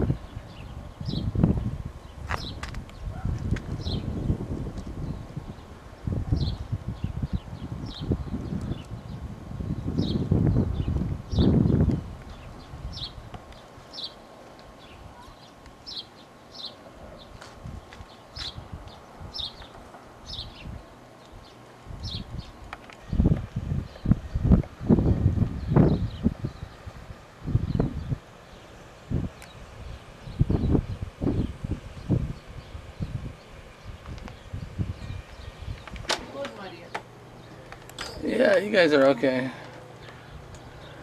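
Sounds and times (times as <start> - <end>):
low rumbling bursts on microphone: 0.0 - 13.3, 21.8 - 36.1.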